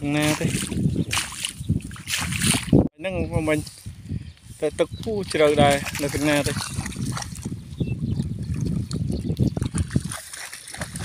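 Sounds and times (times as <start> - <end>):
footsteps splashing through water: 0.0 - 2.8, 5.2 - 11.0.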